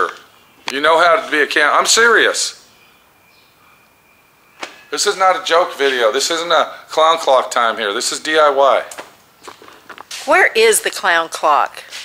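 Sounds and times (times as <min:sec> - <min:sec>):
man speaking: 0:00.0 - 0:02.6, 0:04.9 - 0:08.9.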